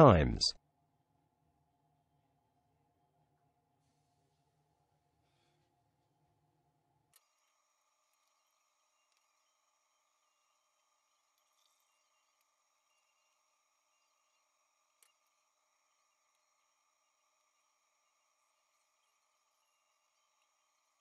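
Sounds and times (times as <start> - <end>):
faint hiss and hum: 0.0 - 21.0.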